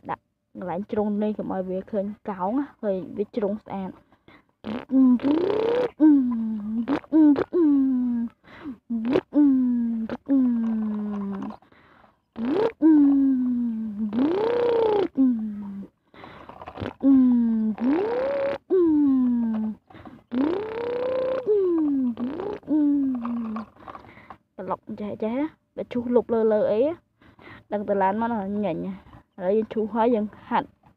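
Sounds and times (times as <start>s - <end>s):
person imitating truck engine: 4.6s - 11.6s, 12.4s - 15.9s, 16.8s - 23.7s.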